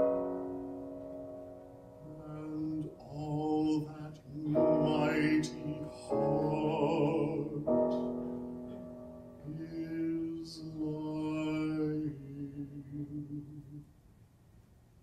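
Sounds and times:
piano chord ringing: 0.0 - 12.8
soft piano accompaniment: 0.0 - 15.0
man singing with vibrato: 2.0 - 8.2, 9.4 - 13.9.

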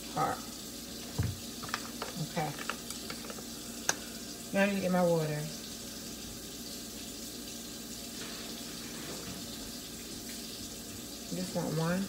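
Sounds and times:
items clicking on kitchen counter: 1.1 - 4.0.

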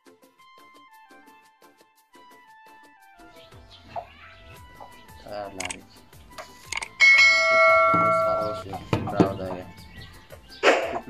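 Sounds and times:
bell chime ding: 7.0 - 8.6.

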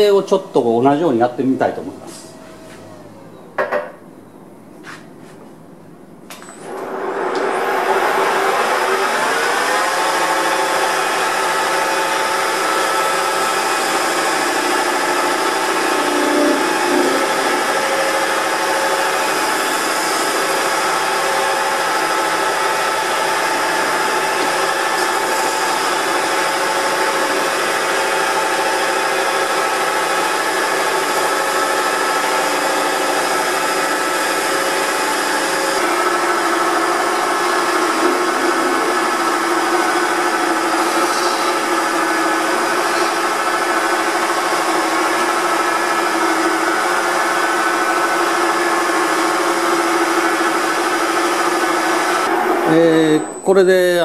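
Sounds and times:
wood lathe humming: 6.6 - 53.2
turning tool cutting wood: 6.7 - 52.8.

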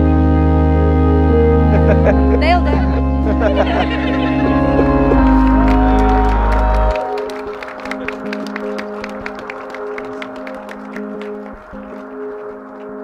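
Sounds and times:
music with long held notes: 0.0 - 13.0
crowd applause: 2.8 - 13.0
hand claps: 4.4 - 13.0.

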